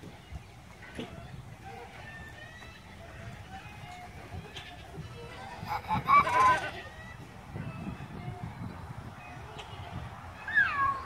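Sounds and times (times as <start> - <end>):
wavering farm animal call: 0.1 - 8.5.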